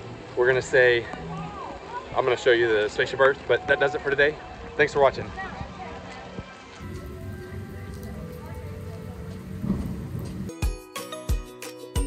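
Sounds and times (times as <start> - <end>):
faint music: 0.0 - 10.6
rain on wet pavement: 6.8 - 10.6.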